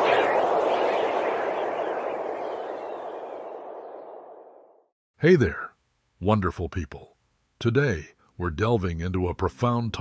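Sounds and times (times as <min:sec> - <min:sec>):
whooshing swell of noise: 0:00.0 - 0:04.8.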